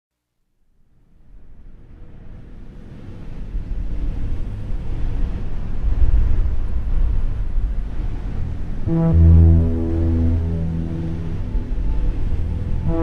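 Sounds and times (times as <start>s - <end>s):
low rushing rumble: 3.8s - 13.0s.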